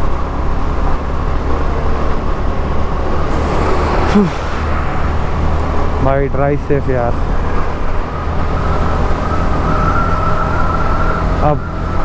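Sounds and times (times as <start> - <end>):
motorcycle engine: 0.0 - 12.0
high whine: 2.4 - 11.6.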